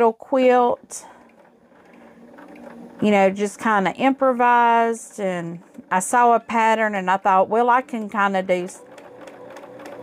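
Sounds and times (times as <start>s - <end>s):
sewing machine motor hum: 0.0s - 10.0s.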